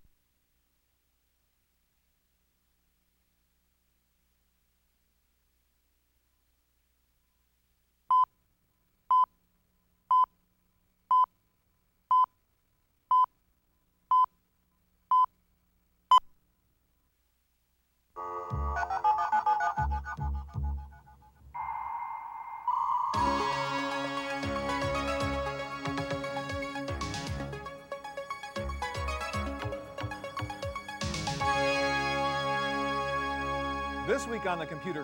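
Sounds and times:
countdown beeps: 21.6s - 23.3s
music with heavy beat: 23.2s - 27.7s, 28.6s - 31.6s.

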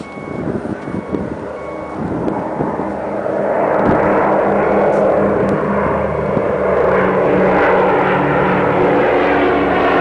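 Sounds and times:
high electronic beep: 0.0s - 2.0s
propeller plane engine drone: 0.0s - 10.0s.

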